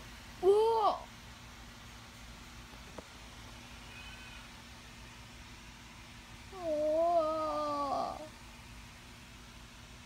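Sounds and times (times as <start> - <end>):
long wavering meow: 3.9 - 4.5, 6.6 - 8.3.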